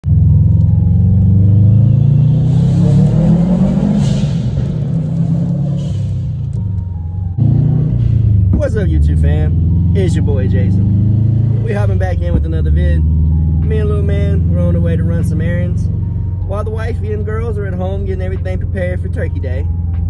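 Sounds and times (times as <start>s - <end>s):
car engine: 0.0s - 20.0s
road noise: 0.0s - 20.0s.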